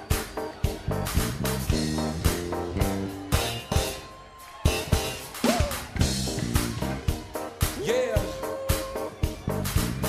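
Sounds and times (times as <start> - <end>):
funk band playing: 0.0 - 10.0.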